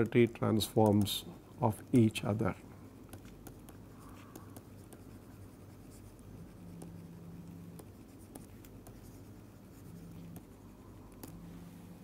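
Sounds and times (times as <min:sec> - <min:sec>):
stylus scratching and tapping: 0:00.0 - 0:11.5.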